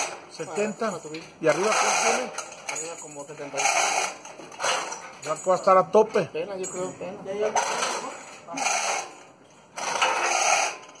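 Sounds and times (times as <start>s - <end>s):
metal mechanism ratcheting: 0.0s - 11.0s.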